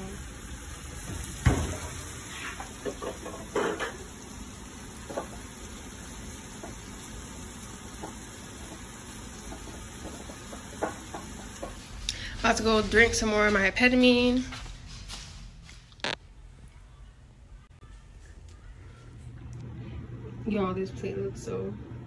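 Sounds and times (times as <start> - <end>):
steak sizzling in a frying pan: 0.0 - 12.0.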